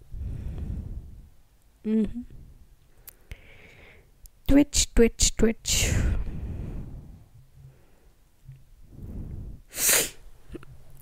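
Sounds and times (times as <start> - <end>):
person sneezing: 9.7 - 10.2.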